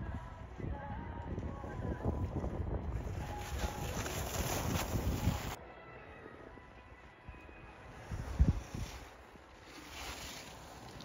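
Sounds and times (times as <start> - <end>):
wind buffeting microphone: 0.0 - 5.6, 7.9 - 9.2
skis carving across snow: 3.0 - 5.6, 8.0 - 11.0.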